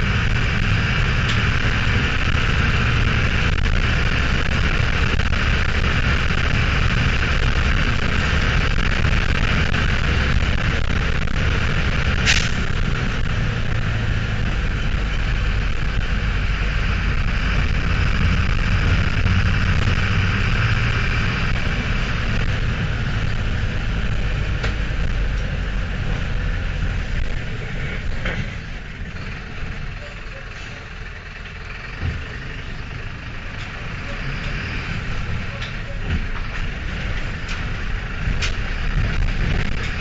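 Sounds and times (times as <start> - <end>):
diesel bus engine rumble: 0.0 - 40.0.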